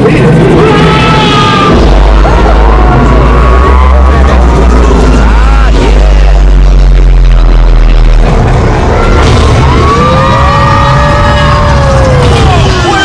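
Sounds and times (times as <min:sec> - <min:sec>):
roller coaster rumbling: 0:00.0 - 0:13.0.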